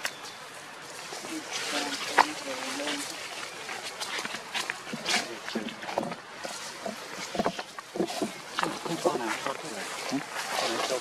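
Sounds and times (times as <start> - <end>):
voices chattering: 0.4 - 11.0
clicks and rustles: 1.2 - 11.0.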